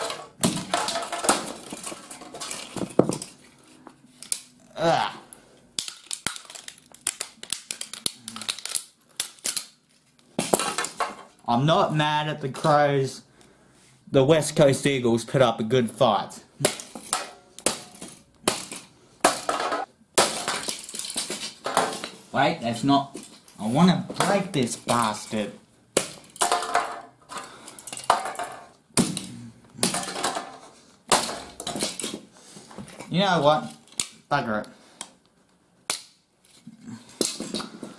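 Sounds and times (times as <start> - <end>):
plastic parts cracking apart: 0.0 - 3.4, 5.8 - 11.3.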